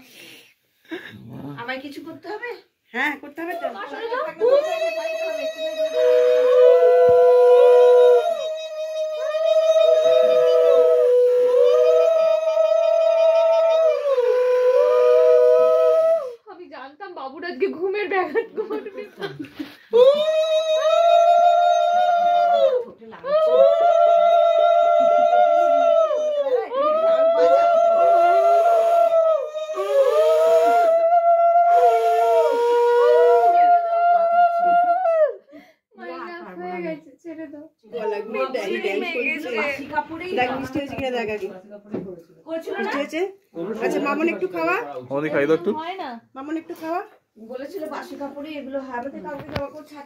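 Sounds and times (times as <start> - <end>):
people talking: 1.1 - 14.1, 20.0 - 30.9, 36.0 - 45.0, 45.6 - 50.0
women ululating: 20.0 - 35.4.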